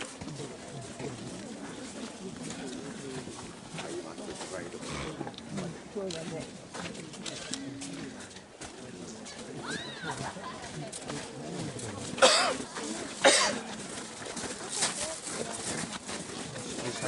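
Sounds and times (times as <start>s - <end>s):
indistinct chatter: 0.0s - 17.0s.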